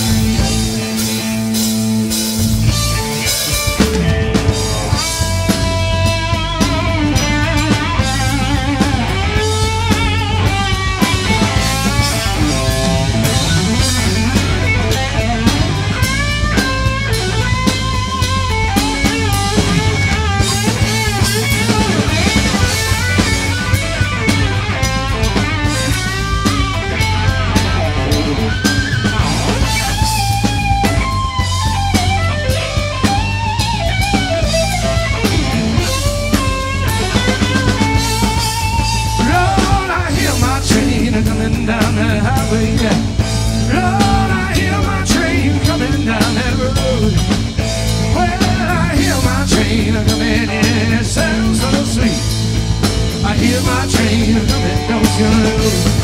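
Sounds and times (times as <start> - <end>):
lead guitar solo: 0.0 - 40.1
blues-rock band playing: 0.0 - 56.0.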